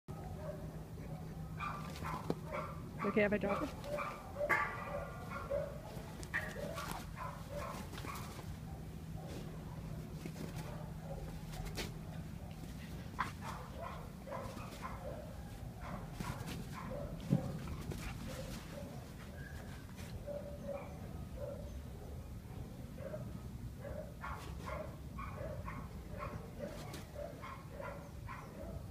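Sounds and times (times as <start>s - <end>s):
dog yipping and barking: 1.6s - 5.8s, 6.4s - 8.4s, 13.4s - 17.5s, 20.3s - 21.8s, 23.8s - 28.9s.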